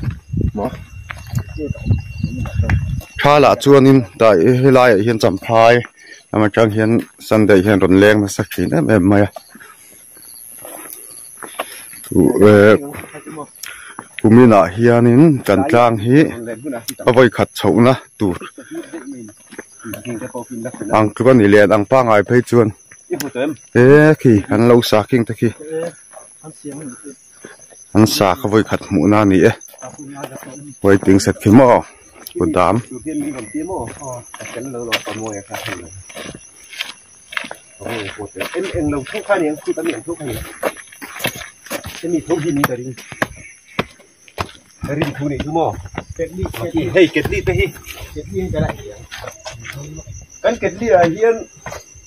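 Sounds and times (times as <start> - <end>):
insects chirring: 0.0 - 52.0
people talking casually: 0.4 - 9.7, 10.6 - 51.8.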